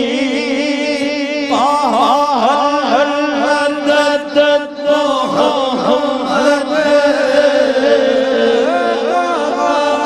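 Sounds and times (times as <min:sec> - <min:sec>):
man singing devotional song: 0:00.0 - 0:10.0
steady held drone: 0:00.0 - 0:10.0.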